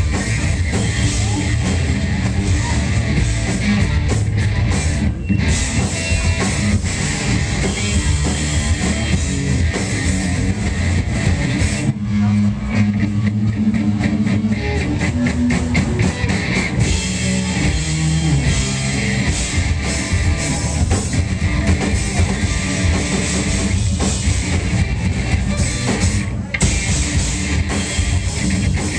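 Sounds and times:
bass guitar: 0.0 - 28.9
distorted electric guitars: 0.0 - 28.9
drum kit: 0.0 - 28.9.

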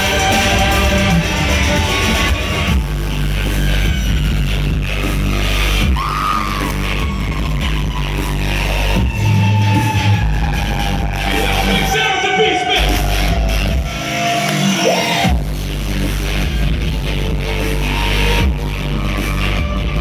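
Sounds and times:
electronic dance music: 0.0 - 20.0
heavy bass beat: 0.0 - 20.0.

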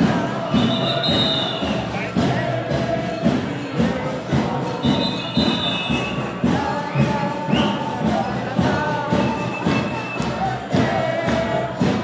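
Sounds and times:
crowd noise: 0.0 - 12.0
marching drums: 0.0 - 12.0.

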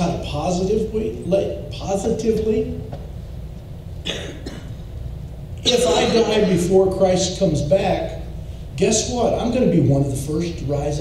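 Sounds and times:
steady low hum: 0.0 - 11.0
person coughing: 4.0 - 4.8, 5.6 - 6.6.

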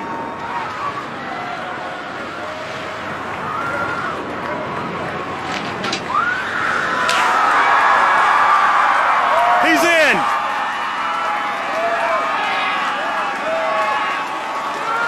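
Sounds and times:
crowd cheering and shouting: 0.0 - 5.4, 6.0 - 15.0.

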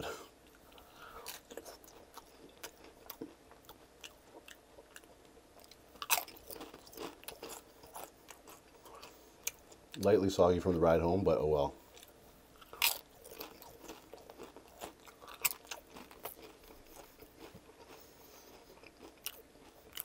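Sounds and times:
chewing chips: 0.4 - 9.8, 11.9 - 20.0
chip crunching: 0.7 - 9.8, 11.9 - 20.0.

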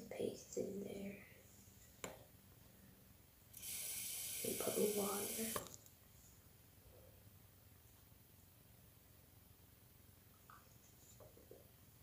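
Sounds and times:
water tap running: 3.6 - 5.6.

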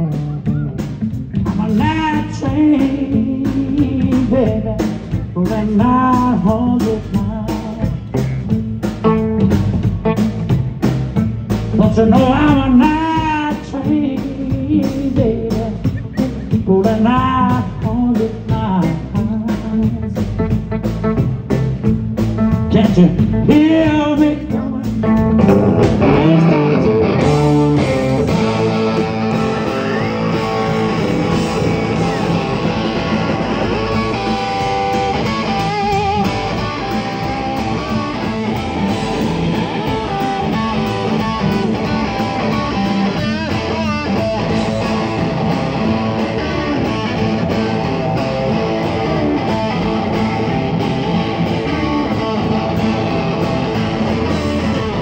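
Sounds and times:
bass guitar: 0.0 - 55.0
drums: 0.0 - 55.0
electric guitars: 0.0 - 55.0.

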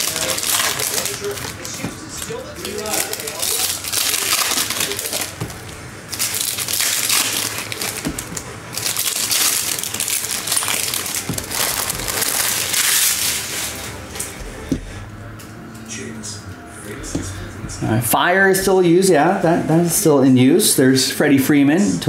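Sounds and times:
foil wrapper tearing and crinkling: 0.0 - 14.3.

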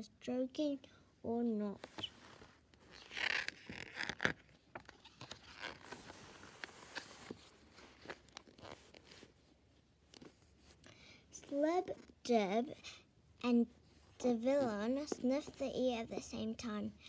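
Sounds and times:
book page turning: 1.8 - 9.5
soft paper rustles and taps: 3.5 - 9.3.

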